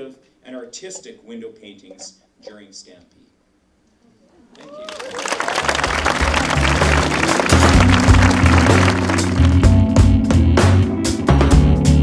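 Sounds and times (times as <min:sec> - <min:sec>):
audience applause: 0:04.6 - 0:09.8
loud music with bass line: 0:05.8 - 0:12.0.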